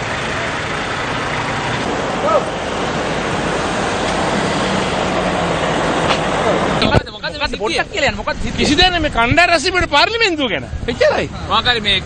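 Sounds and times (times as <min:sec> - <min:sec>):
traffic driving past: 0:00.0 - 0:08.6.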